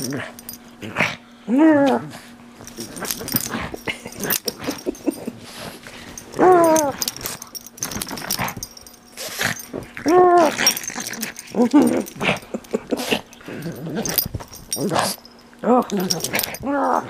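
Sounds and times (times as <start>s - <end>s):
person laughing: 3.8s - 5.4s, 11.7s - 13.3s
dog whine-growls: 9.2s - 14.2s.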